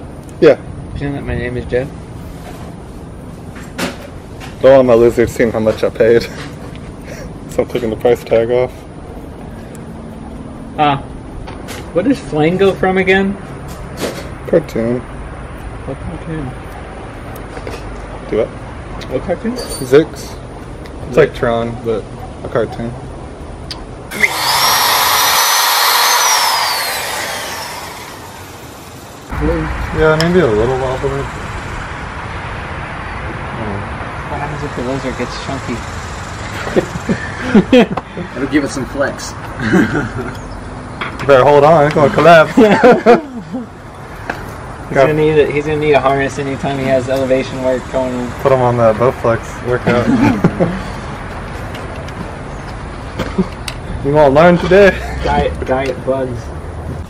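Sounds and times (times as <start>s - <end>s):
power drill boring into wood: 24.1s - 29.3s
steady rushing noise: 26.1s - 36.5s
low rumble: 29.3s - 33.9s.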